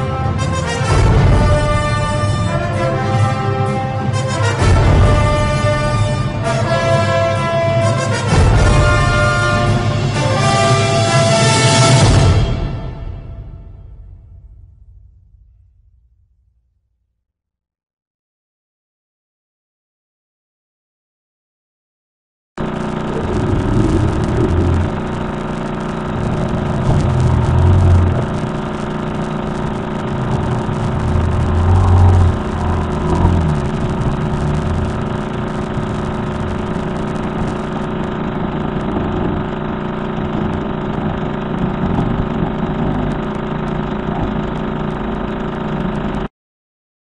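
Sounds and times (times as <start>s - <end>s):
low rumble: 22.6s - 46.2s
drone of held tones: 22.6s - 46.3s.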